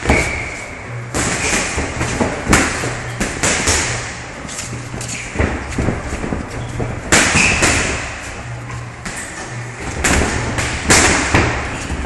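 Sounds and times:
boxing gloves smacking: 1.2s - 4.2s, 5.2s - 8.1s.

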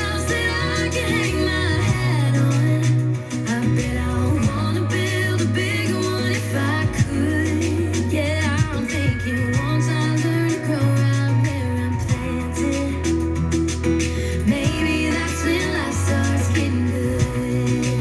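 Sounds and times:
bass line: 0.0s - 18.0s
country song on radio: 0.0s - 18.0s
guitar: 0.0s - 18.0s
person singing: 0.0s - 18.0s.

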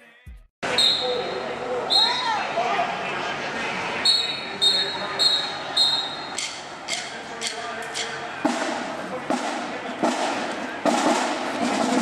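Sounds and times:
marching band drums beating: 6.4s - 12.0s.

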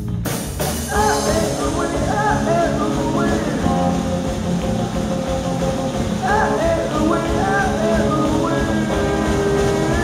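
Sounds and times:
live rock band instrumental: 0.0s - 10.0s.

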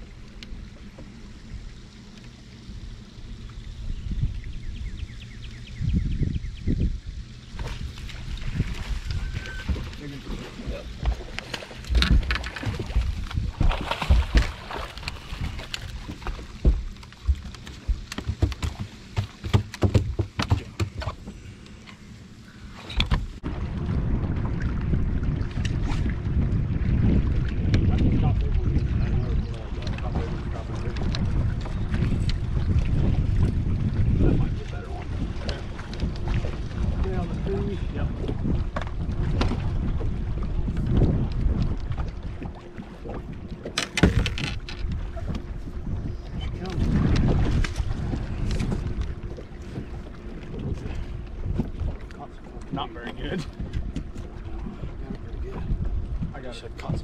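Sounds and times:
faint steady hum: 0.0s - 57.0s
wind buffeting microphone: 3.6s - 21.3s, 22.9s - 57.0s.

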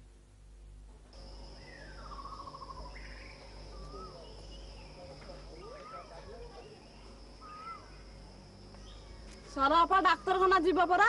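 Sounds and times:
high-pitched insect drone: 1.2s - 11.0s
birds calling: 1.5s - 9.3s.

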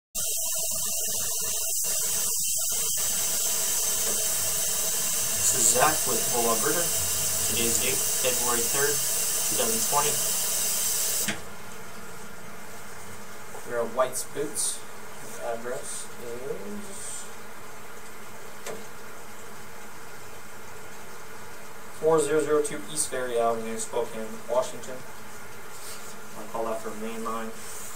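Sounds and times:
running water: 0.2s - 14.6s
steady buzzing hum: 0.2s - 27.7s.

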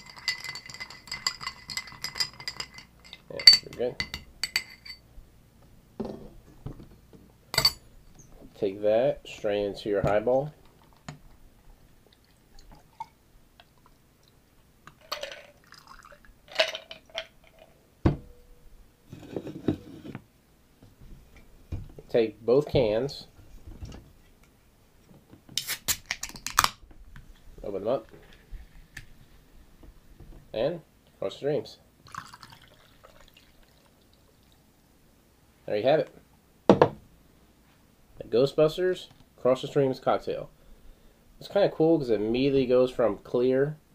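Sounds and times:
glass and ice clinking: 0.0s - 5.0s, 7.6s - 7.8s, 15.0s - 17.7s, 32.1s - 33.3s
liquid trickling onto ice: 15.0s - 16.3s, 32.1s - 34.6s.

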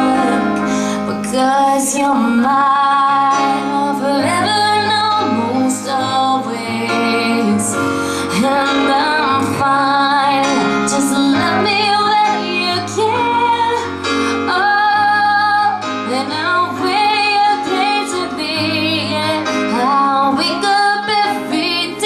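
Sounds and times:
instrumental backing music: 0.0s - 22.0s
woman singing into a microphone: 0.0s - 22.0s.

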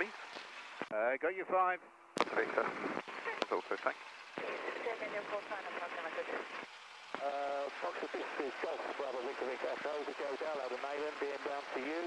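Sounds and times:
tinny speech over intercom radio: 2.3s - 3.9s, 7.2s - 12.0s.

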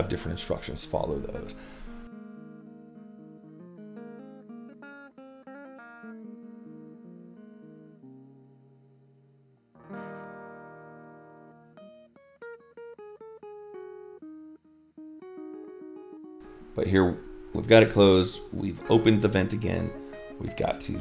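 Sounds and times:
guitar chord ringing: 0.0s - 21.0s
plucked guitar notes: 0.0s - 21.0s.

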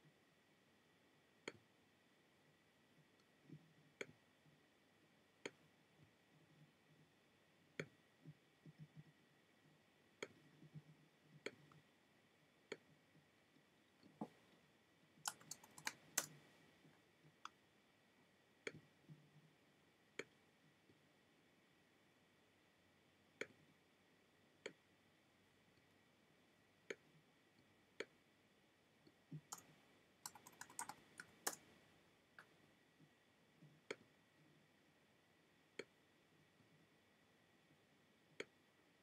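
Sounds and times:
computer keyboard keystrokes: 15.2s - 16.4s, 29.5s - 31.7s.

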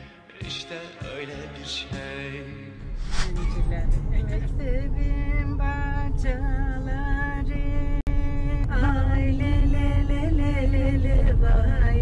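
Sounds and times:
music: 0.0s - 12.0s
woman singing folk melody: 3.4s - 12.0s.

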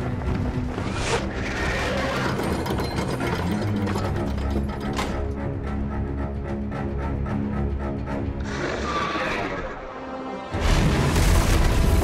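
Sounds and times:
film score music: 0.0s - 12.0s
winch ratcheting: 1.8s - 5.4s.

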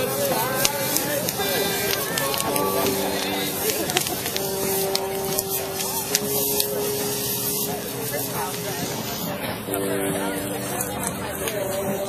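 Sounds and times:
bonfire crackling and rushing: 0.0s - 12.0s
steady held tone: 0.0s - 12.0s.

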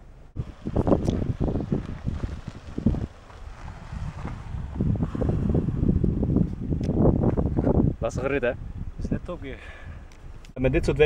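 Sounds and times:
car moving slowly on dirt track: 0.3s - 6.6s
wind buffeting microphone: 0.3s - 11.0s.

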